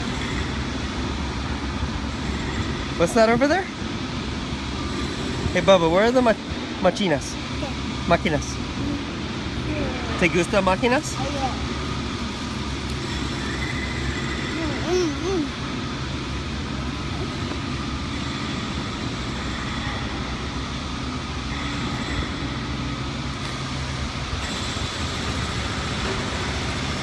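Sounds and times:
city street traffic: 0.0 - 27.0
truck engine: 0.0 - 27.0.

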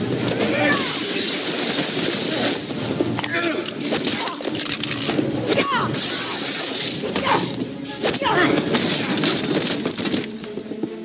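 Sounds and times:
glass pane shattering: 0.8 - 3.2, 6.0 - 7.3, 8.7 - 10.6.

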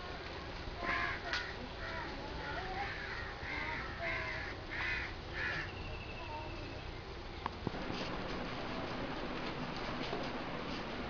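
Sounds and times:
crow cawing: 0.8 - 5.8.

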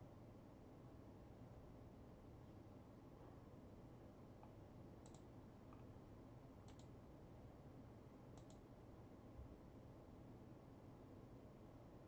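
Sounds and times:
computer mouse clicks: 4.4 - 5.9, 6.6 - 7.0, 8.3 - 8.7.

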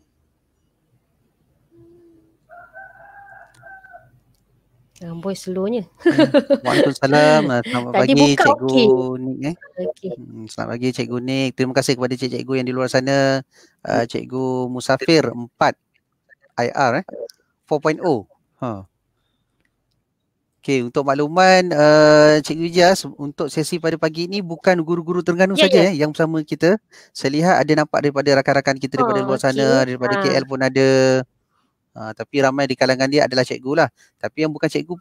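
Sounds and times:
rooster crowing: 2.5 - 4.2
person speaking: 6.1 - 13.0, 13.9 - 15.6, 16.6 - 18.8, 20.8 - 26.1, 28.8 - 30.9
person saying huh: 6.7 - 10.5, 25.5 - 26.0, 29.0 - 30.6.

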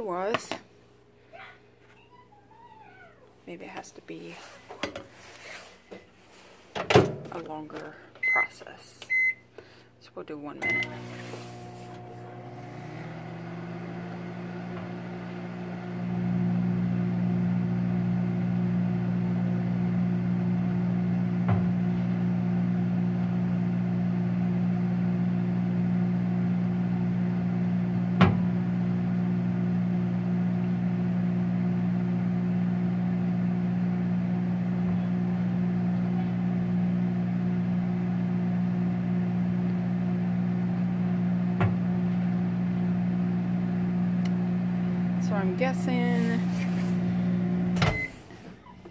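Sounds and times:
microwave oven humming: 10.6 - 48.9.

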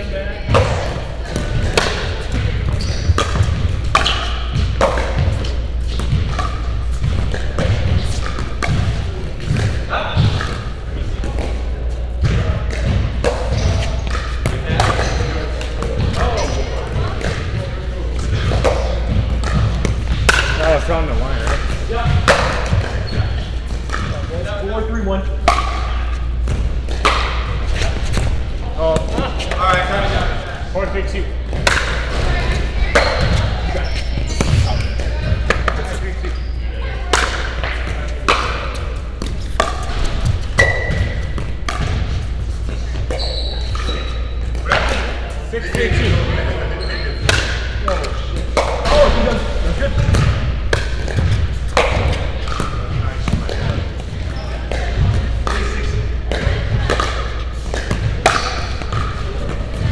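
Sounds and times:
steady low hum: 0.0 - 59.9
paddles hitting plastic ball: 0.5 - 23.1, 31.5 - 32.2, 37.1 - 43.9, 50.0 - 59.9.

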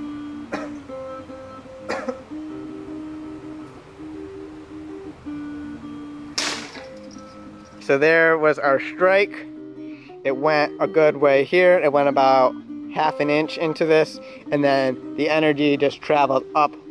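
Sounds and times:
plucked guitar music: 0.0 - 16.9
sword chopping wooden pole: 6.4 - 6.9.

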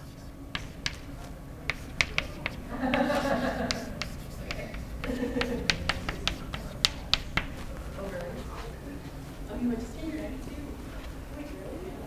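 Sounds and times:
chalk tapping on a blackboard: 0.0 - 7.8.

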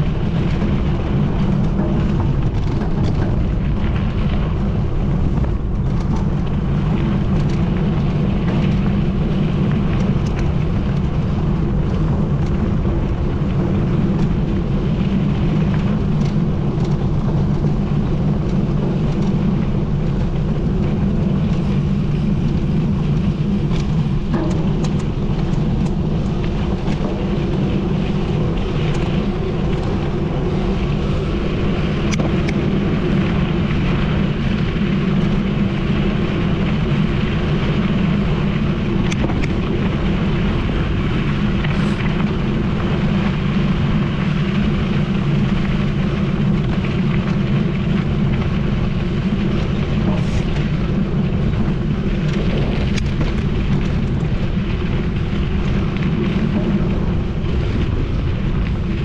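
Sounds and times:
gravel ticks: 0.0 - 59.0
tyres rolling on gravel: 0.0 - 59.0
wind rushing over microphone: 0.0 - 59.0.

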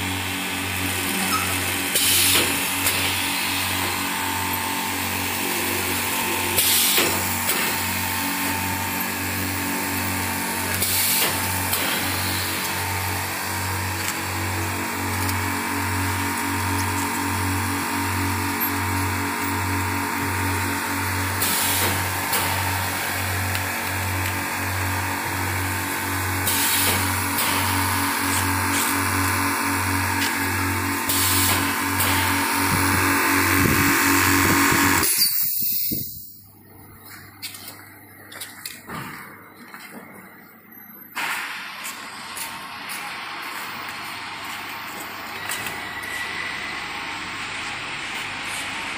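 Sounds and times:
packing machine hum: 0.0 - 48.9.

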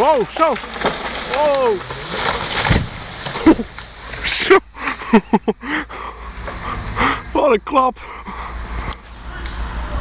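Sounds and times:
branches crashing through air: 0.0 - 5.2
tree hitting ground with heavy bang: 0.0 - 5.2.

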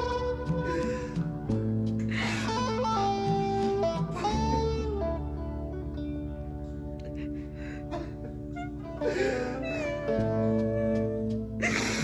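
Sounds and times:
soft guitar music: 0.0 - 12.0.

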